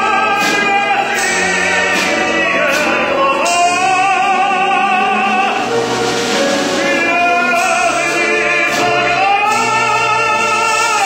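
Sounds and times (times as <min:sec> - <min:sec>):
operatic tenor singing: 0:00.0 - 0:11.0
string orchestra: 0:00.0 - 0:11.0.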